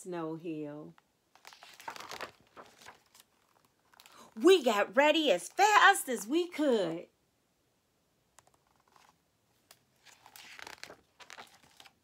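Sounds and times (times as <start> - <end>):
book pages rustling: 1.3 - 4.2, 8.4 - 12.0.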